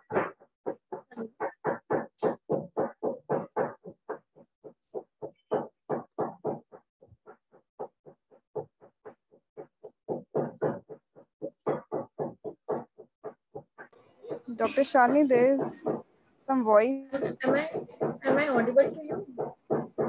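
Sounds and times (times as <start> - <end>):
person speaking fast: 14.4 - 15.8, 16.4 - 17.7.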